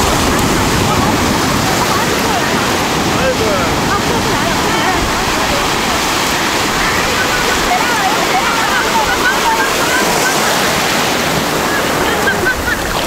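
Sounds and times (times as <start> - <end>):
surf breaking on sand: 0.0 - 13.0.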